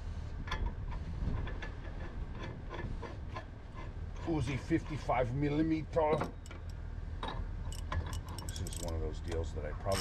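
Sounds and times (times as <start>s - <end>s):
light metal clinks of tools: 6.0s - 10.0s.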